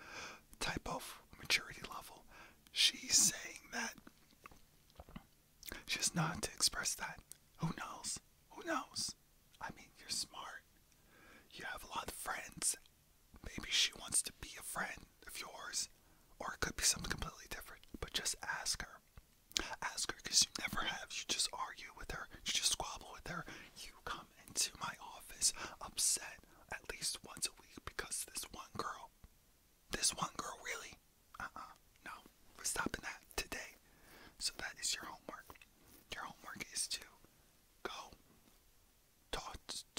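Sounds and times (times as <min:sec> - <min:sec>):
man whispering: 0:00.0 - 0:10.7, 0:11.4 - 0:29.2, 0:29.9 - 0:38.2, 0:39.3 - 0:39.9.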